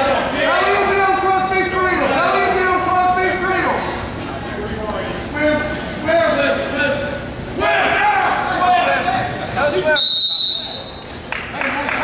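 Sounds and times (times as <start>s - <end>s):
people shouting in a gym: 7.5s - 9.2s
referee's whistle blast: 9.8s - 11.0s.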